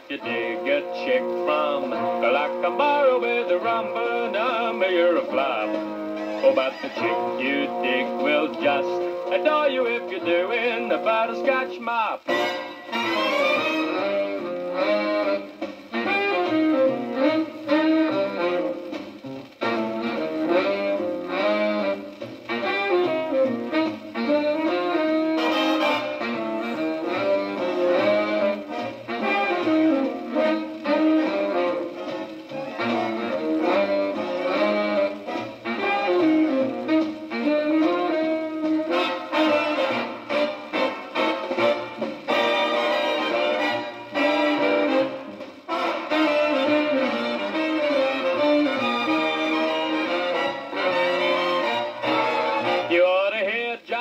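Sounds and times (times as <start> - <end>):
dance band music on a record: 0.0 - 54.0.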